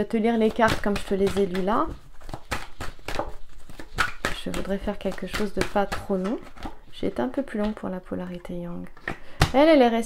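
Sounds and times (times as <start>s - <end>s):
cards shuffling: 0.4s - 7.8s.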